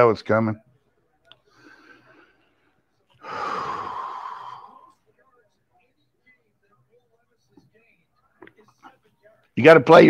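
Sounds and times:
faint breath: 0:01.4 - 0:05.0.

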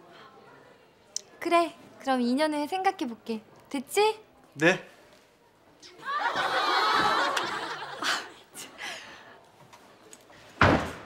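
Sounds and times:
laughter: 0:06.0 - 0:08.4
loud thump: 0:10.6 - 0:11.0.

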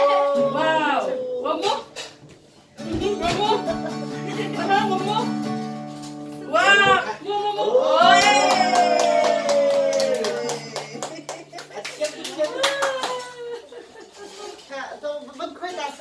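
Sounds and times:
people cheering: 0:00.0 - 0:01.4, 0:07.3 - 0:13.9
group clapping: 0:07.9 - 0:13.8.

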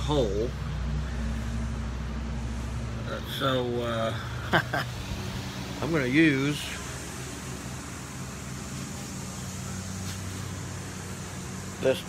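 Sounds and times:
low machine hum: 0:00.0 - 0:12.0.

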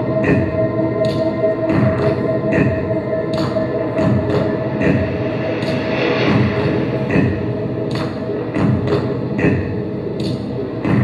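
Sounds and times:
dance music over speakers: 0:00.0 - 0:11.0.

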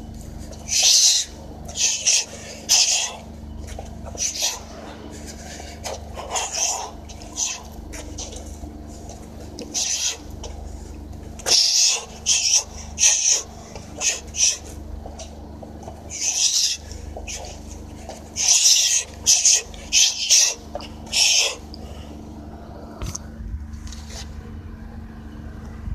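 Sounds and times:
low steady hum: 0:00.0 - 0:25.9.

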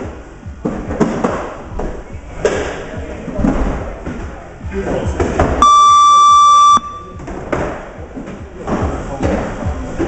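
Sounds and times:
electronic buzzer beep: 0:05.6 - 0:07.2.

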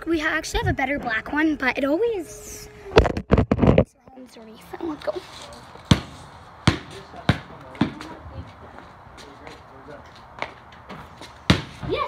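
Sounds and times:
basketball bouncing on hard ground: 0:05.7 - 0:12.0.

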